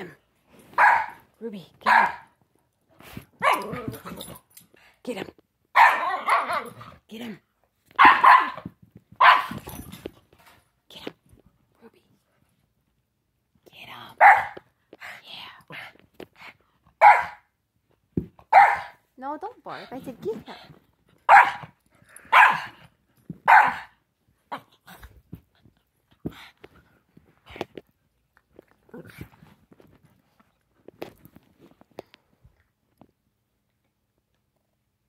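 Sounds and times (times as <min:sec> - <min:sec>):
faint dog play noises: 0:00.0 - 0:13.1, 0:13.9 - 0:34.8
dog barking: 0:00.8 - 0:01.2, 0:01.8 - 0:02.3, 0:03.4 - 0:03.8, 0:05.8 - 0:06.8, 0:08.0 - 0:08.6, 0:09.2 - 0:09.5, 0:14.2 - 0:14.6, 0:17.0 - 0:17.5, 0:18.5 - 0:19.0, 0:21.3 - 0:22.8, 0:23.4 - 0:24.0.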